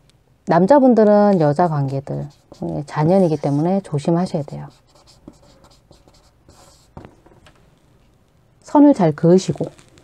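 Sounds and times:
chalk scratching on chalkboard: 1.2 - 7.1.

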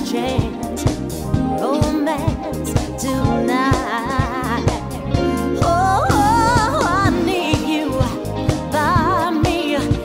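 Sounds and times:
live dance band playing: 0.0 - 10.0
steady drum beat: 0.3 - 10.0.

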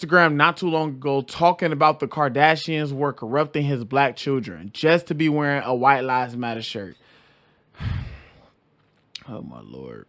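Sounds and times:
man sighing: 7.7 - 8.5.

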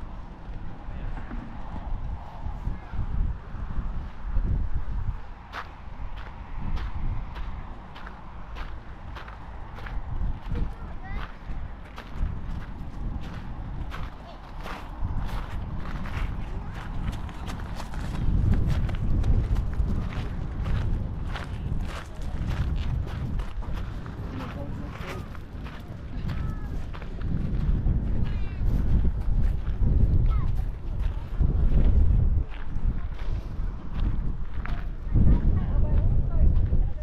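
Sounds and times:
wind rumbling on microphone: 0.0 - 37.0
footsteps on gravel: 5.4 - 36.8.

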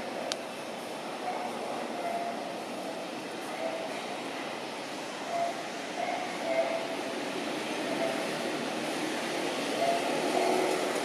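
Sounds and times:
outdoor hiss and rumble: 0.0 - 11.0.

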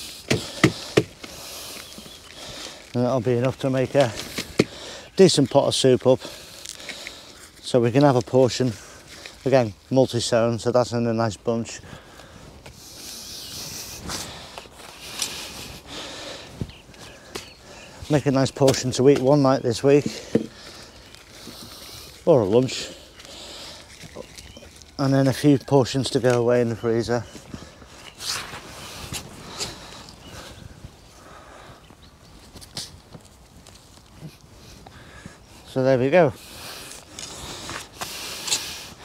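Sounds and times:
soil and leaves rustling: 0.0 - 39.0.

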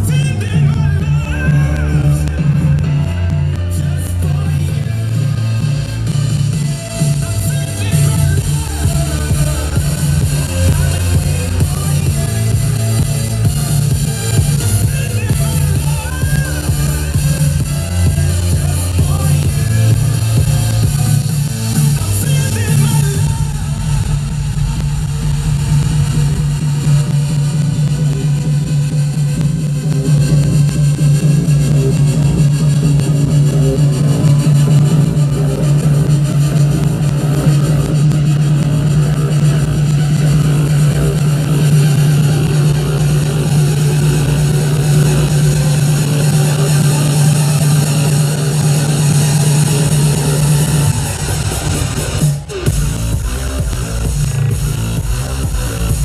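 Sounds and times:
electronic dance music: 0.0 - 56.0
heavy bass line: 0.0 - 56.0.

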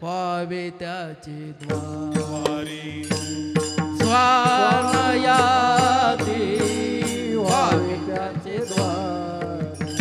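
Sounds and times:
man singing ornamented notes: 0.0 - 10.0
percussion strikes: 1.6 - 10.0.

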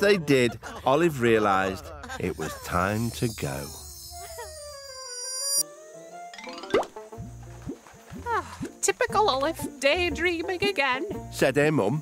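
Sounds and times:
rising run of notes: 4.9 - 8.6.

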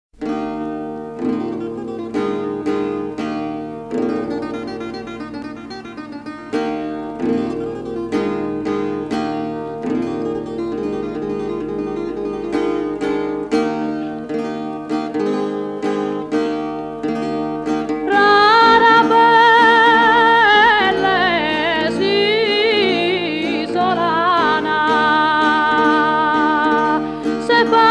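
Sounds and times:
acoustic guitar playing: 0.2 - 27.9.

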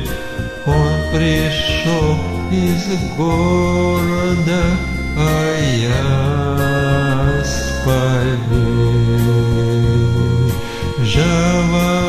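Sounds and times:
instrumental accompaniment: 0.0 - 12.0.

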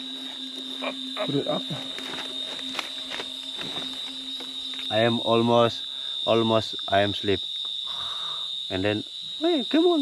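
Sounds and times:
night insects trilling: 0.0 - 10.0.

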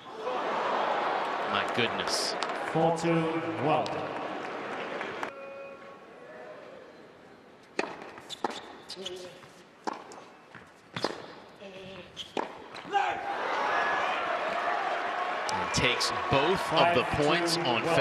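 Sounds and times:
crowd cheering and shouting: 0.0 - 5.9, 12.9 - 18.0
tennis racquet hitting ball: 7.8 - 8.8, 9.8 - 11.5, 12.3 - 12.9.

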